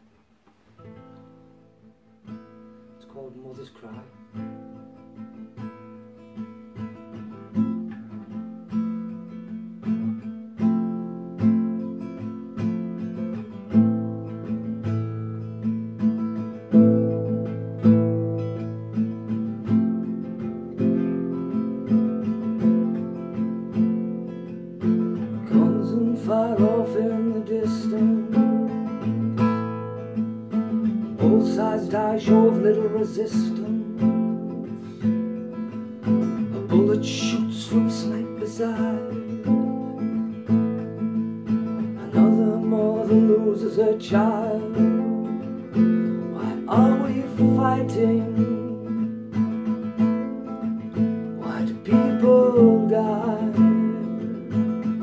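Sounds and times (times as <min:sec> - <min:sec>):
classical guitar playing chords: 0:00.0 - 0:55.0.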